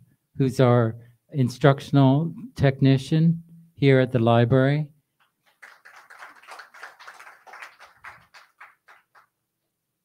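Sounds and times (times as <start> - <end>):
people clapping lightly: 5.2 - 9.4.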